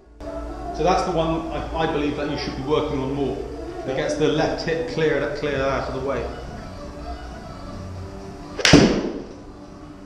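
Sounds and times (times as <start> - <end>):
golf club striking ball: 8.6 - 9.4.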